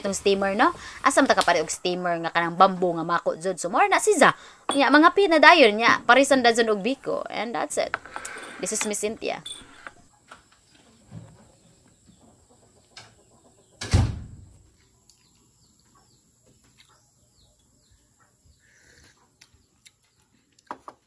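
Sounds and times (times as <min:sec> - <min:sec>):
faint bird chirps: 0:14.6 - 0:20.6.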